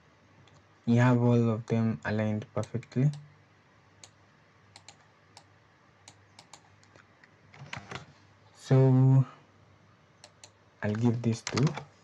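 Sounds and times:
keyboard and mouse clicks: 4.0 - 8.1, 10.2 - 11.9.

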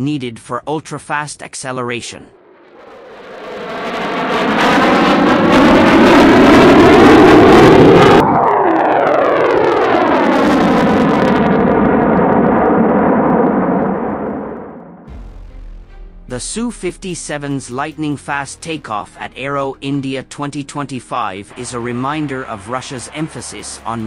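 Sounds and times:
jet fighter flying past: 2.0 - 15.3, 21.1 - 24.0.

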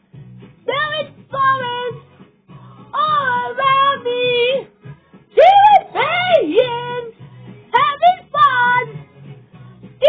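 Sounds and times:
low musical accompaniment: 0.0 - 10.0.

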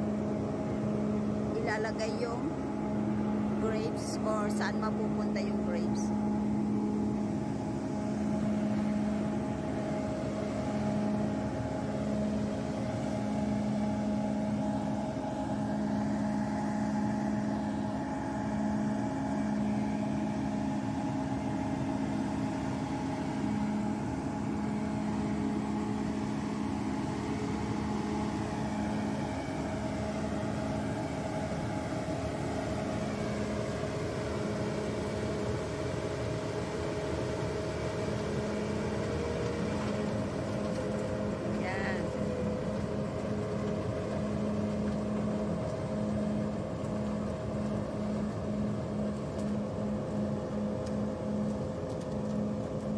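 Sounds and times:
harvester machine drone: 0.0 - 52.9
pulsing low hum: 0.0 - 52.9.

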